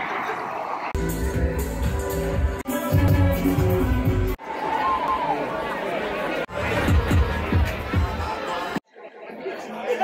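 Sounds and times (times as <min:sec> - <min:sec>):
crowd chatter: 0:00.0 - 0:10.0
indistinct talking: 0:00.0 - 0:10.0.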